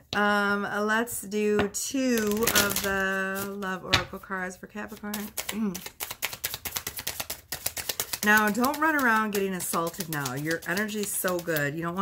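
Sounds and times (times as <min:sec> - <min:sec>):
cards being shuffled: 0:02.2 - 0:03.6, 0:04.8 - 0:12.0.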